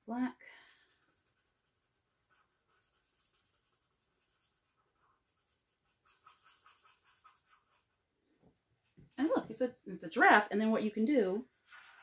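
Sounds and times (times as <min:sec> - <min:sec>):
marker scratching on paper: 0:00.7 - 0:08.0, 0:11.5 - 0:12.0.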